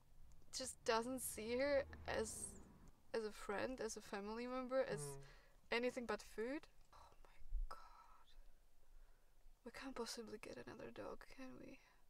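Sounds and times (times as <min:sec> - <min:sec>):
woman whispering: 0:04.8 - 0:05.3, 0:07.0 - 0:08.4.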